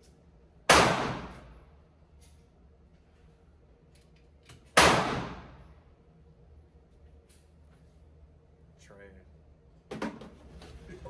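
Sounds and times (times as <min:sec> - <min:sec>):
gunshot echoing indoors: 0:00.7 - 0:01.6, 0:04.7 - 0:05.7.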